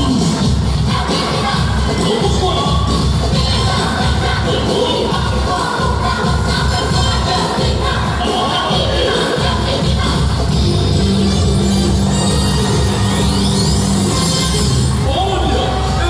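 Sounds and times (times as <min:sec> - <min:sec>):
pop music with singing: 0:00.0 - 0:16.0.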